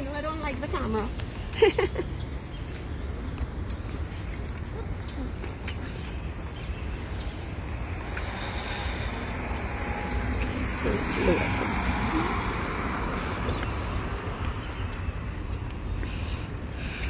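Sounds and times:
low traffic rumble: 0.0 - 17.0
car driving past: 8.1 - 14.4.

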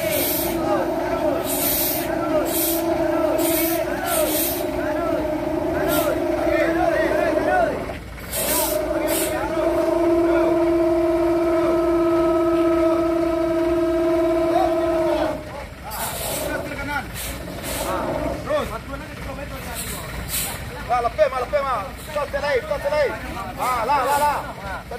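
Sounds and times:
loud steady pitched tone: 0.0 - 18.7
air brakes hissing: 0.0 - 18.8, 19.6 - 20.8, 23.4 - 24.6
men calling out: 0.0 - 19.2.

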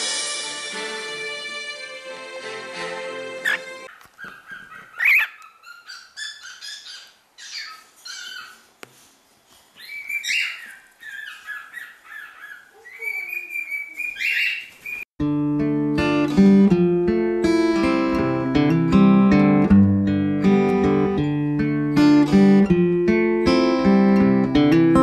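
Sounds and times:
acoustic guitar music: 0.0 - 3.9, 15.2 - 25.0
cockatiel chirping and whistling: 4.2 - 8.5, 9.8 - 15.0.

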